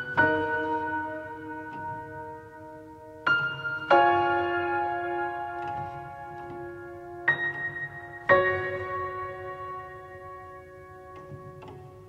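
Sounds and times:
slow soft piano music: 0:00.0 - 0:12.0.

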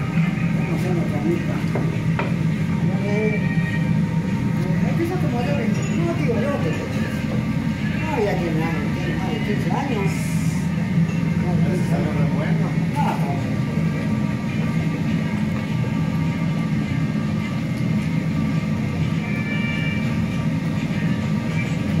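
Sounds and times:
faint voices: 0:00.0 - 0:22.0
propane burner rumble: 0:00.0 - 0:22.0.

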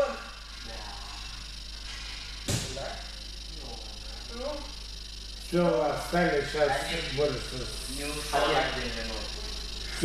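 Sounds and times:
sharp knock: 0:02.4 - 0:02.8.

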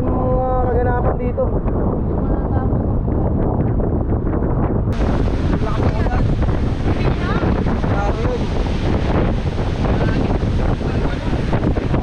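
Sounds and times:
storm wind buffeting microphone: 0:00.0 - 0:12.0.

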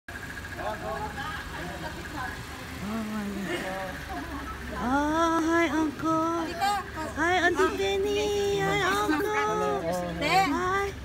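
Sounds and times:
truck engine idling: 0:00.1 - 0:11.0.

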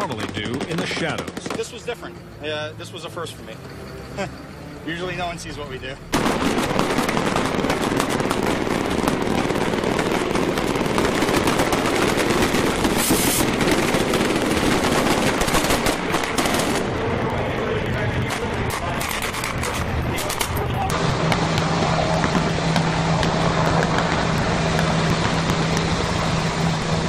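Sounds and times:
machine gun fire: 0:00.0 - 0:01.8, 0:06.1 - 0:17.0
boat engines: 0:00.0 - 0:27.0
water spray: 0:12.9 - 0:13.5.

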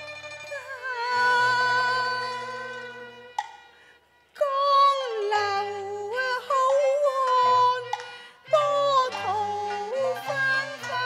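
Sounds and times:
woman singing opera: 0:00.0 - 0:03.3, 0:04.4 - 0:11.0
soft instrumental accompaniment: 0:00.0 - 0:11.0.

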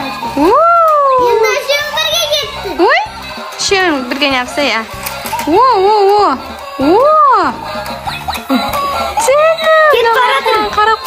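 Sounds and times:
children's voices: 0:01.1 - 0:03.0.

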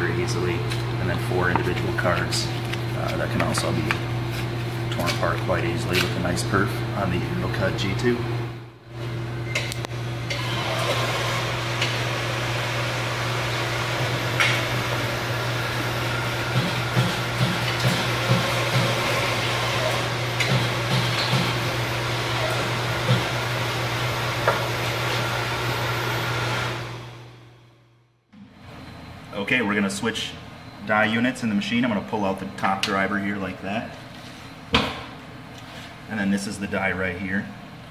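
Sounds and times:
machine motor hum: 0:00.0 - 0:30.8.

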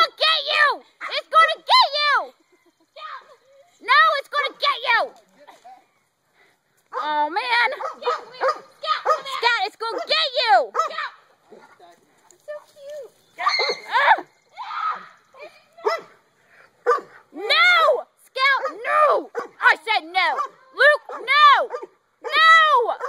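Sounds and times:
dogs barking: 0:07.7 - 0:11.8, 0:15.8 - 0:16.2, 0:16.8 - 0:17.3, 0:18.4 - 0:19.7, 0:20.3 - 0:23.0
people shouting excitedly: 0:08.0 - 0:11.3, 0:13.4 - 0:16.1, 0:17.3 - 0:23.0.

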